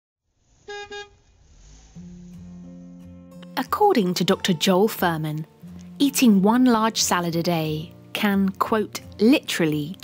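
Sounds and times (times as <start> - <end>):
vehicle horn toots: 0.6 - 1.3.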